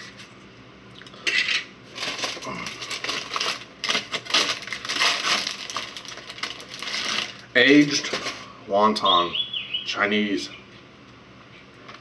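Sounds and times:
food wrapper crinkling: 0:01.9 - 0:08.4.

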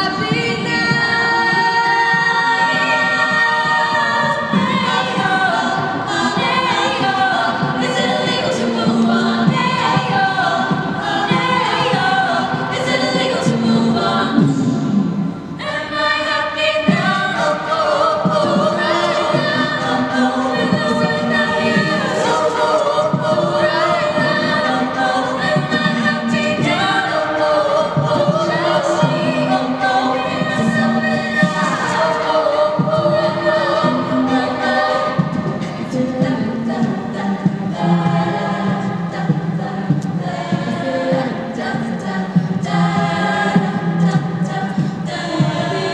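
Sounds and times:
a cappella group singing pop: 0:00.0 - 0:45.9
vocal percussion beat: 0:00.0 - 0:45.9.

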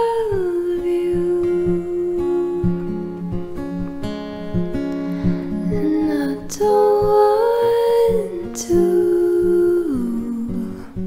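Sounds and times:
woman singing wordless ooh: 0:00.0 - 0:03.6, 0:05.4 - 0:11.0
fingerpicked acoustic guitar: 0:00.0 - 0:11.0.

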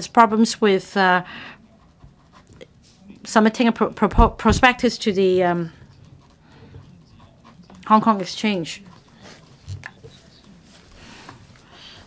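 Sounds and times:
soft breathing: 0:01.2 - 0:02.0, 0:05.7 - 0:07.6, 0:08.9 - 0:12.0.

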